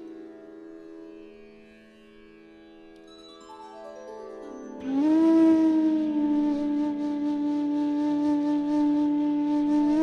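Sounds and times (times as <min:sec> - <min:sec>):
bamboo flute long low note: 0:04.8 - 0:10.0.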